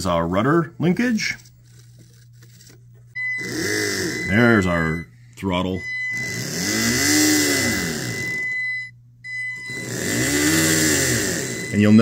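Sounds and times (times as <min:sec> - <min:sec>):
thin steady high whine: 0:03.1 - 0:12.0
electric motors spinning up and down: 0:03.2 - 0:04.7, 0:06.0 - 0:12.0.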